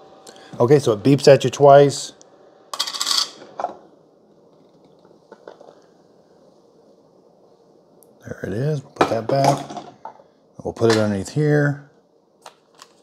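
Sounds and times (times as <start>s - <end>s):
room hiss: 0.0s - 13.0s.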